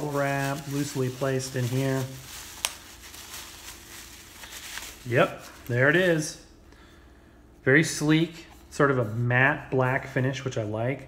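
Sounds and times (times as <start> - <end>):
bubble wrap crackle: 0.0 - 6.2
bubble wrap crinkling: 0.0 - 6.2.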